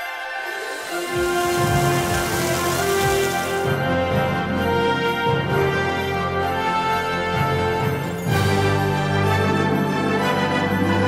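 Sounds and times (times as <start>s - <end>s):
food sizzling on a grill: 0.5s - 3.7s.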